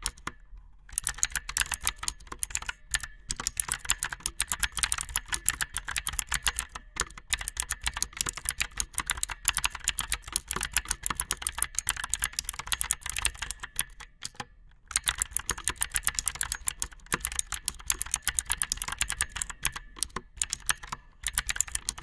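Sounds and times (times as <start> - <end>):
fast typing on mechanical keyboard: 0.0 - 22.0.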